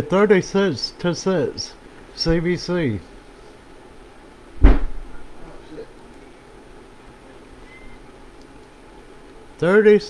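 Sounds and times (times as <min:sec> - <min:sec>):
sharp low thump: 0:04.6 - 0:05.2.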